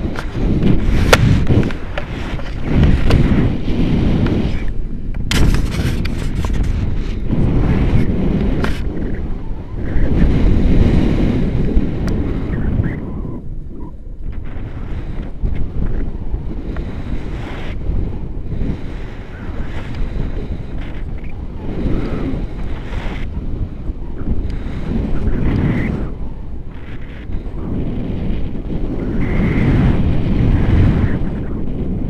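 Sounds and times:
rumbling wind noise on microphone: 0:00.0 - 0:32.0.

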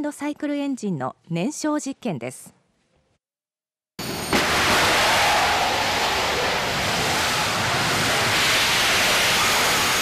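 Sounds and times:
jet engine rushing exhaust: 0:04.0 - 0:10.0
engine hiss: 0:04.4 - 0:10.0.

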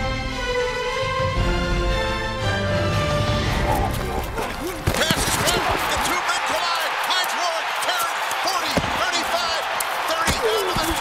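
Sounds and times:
people shouting: 0:03.9 - 0:11.0
stadium crowd noise: 0:04.0 - 0:11.0
players colliding thuds: 0:04.7 - 0:06.6, 0:08.6 - 0:09.5, 0:10.2 - 0:11.0.

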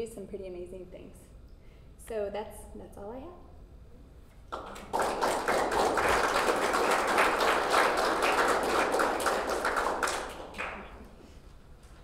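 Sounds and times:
audience applauding: 0:04.5 - 0:11.2.

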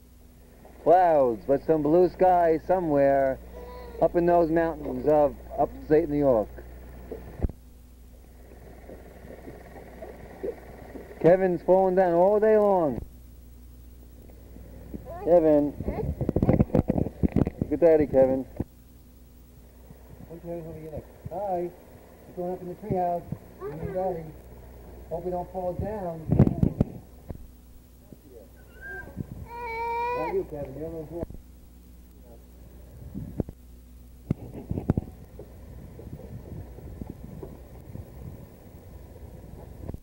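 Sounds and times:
faint low hum: 0:00.0 - 0:40.0
child's voice: 0:03.5 - 0:04.1, 0:15.0 - 0:16.9, 0:23.6 - 0:24.3, 0:28.8 - 0:30.5.

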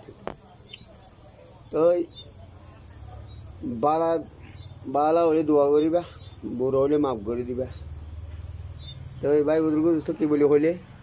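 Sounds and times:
crickets chirping: 0:00.0 - 0:11.0
man speaking: 0:04.9 - 0:07.8, 0:09.2 - 0:10.9.

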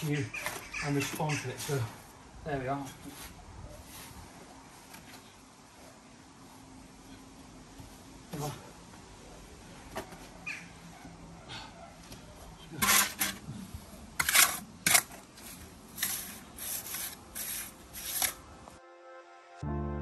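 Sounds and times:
trowel scraping mortar: 0:12.8 - 0:13.5, 0:14.2 - 0:18.4
music: 0:18.7 - 0:20.0.

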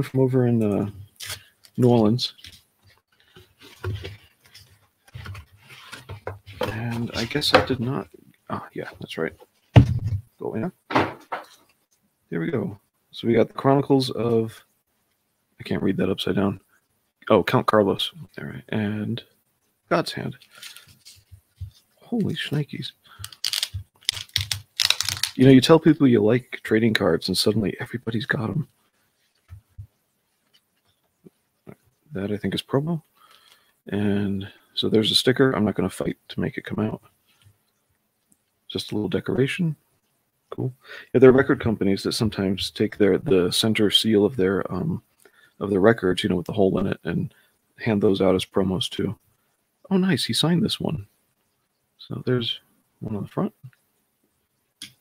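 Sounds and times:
faint scraping hiss: 0:00.0 - 0:10.8, 0:11.4 - 0:23.7
cardboard flaps folding and rubbing: 0:03.3 - 0:07.8.

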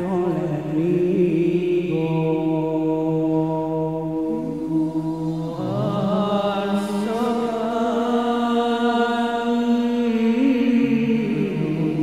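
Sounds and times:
men singing: 0:00.0 - 0:12.0
low sustained hum: 0:00.6 - 0:08.1.

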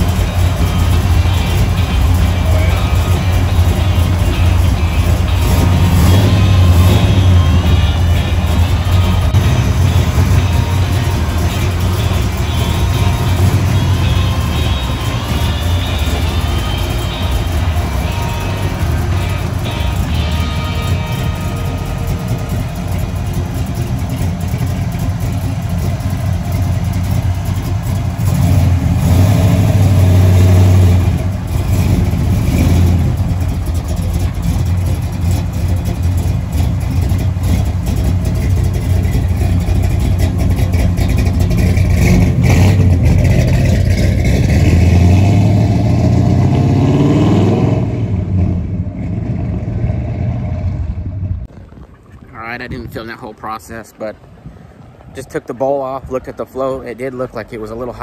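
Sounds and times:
car engine revving and driving off: 0:00.0 - 0:51.7.

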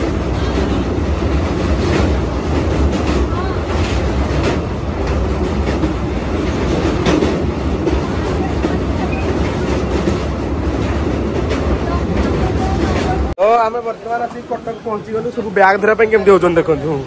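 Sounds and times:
wheels clacking over rails: 0:00.0 - 0:13.4
train wheels rumbling: 0:00.0 - 0:17.0.

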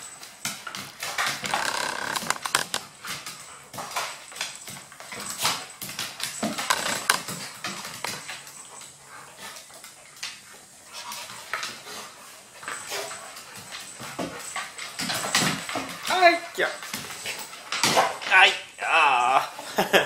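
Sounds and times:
dog claws scrabbling on wooden floor: 0:00.4 - 0:03.2, 0:03.8 - 0:08.5.

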